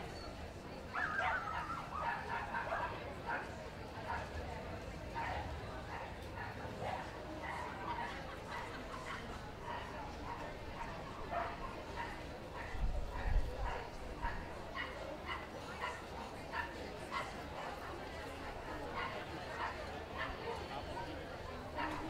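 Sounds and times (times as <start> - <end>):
murmur of voices: 0.0 - 22.0
dogs barking and yapping: 0.9 - 4.4, 5.1 - 21.0, 21.7 - 22.0.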